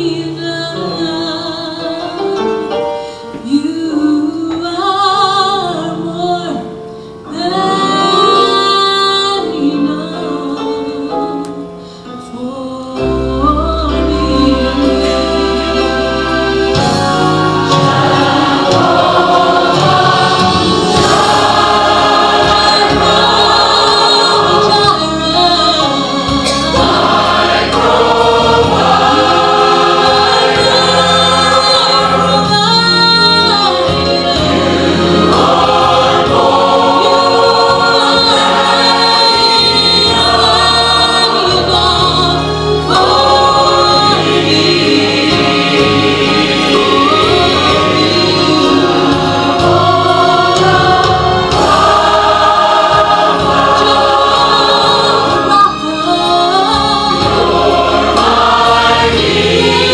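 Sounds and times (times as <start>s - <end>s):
choir singing gospel song: 3.4s - 11.6s, 13.0s - 59.9s.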